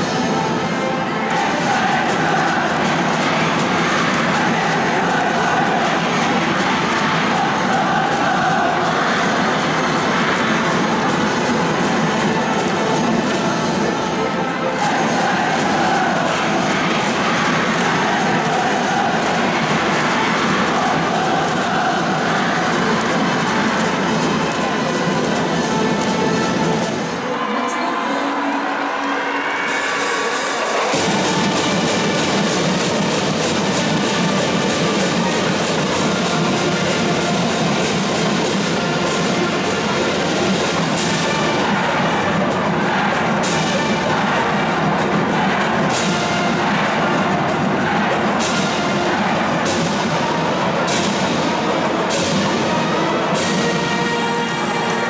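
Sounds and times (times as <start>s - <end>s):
brass band playing: 0.0s - 27.6s, 28.3s - 55.0s
crowd cheering: 0.0s - 55.0s
students chanting: 0.0s - 55.0s.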